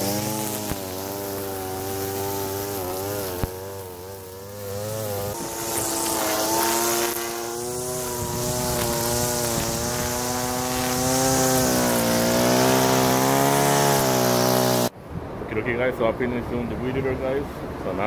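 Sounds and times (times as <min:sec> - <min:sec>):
string trimmer engine cutting grass: 0:00.0 - 0:14.9.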